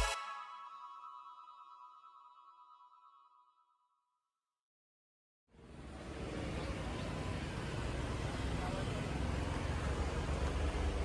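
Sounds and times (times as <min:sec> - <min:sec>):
road traffic rumble: 0:05.5 - 0:11.0.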